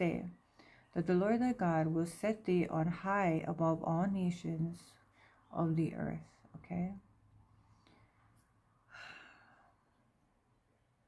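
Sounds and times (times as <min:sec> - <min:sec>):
woman's faint sigh: 0:08.9 - 0:09.7.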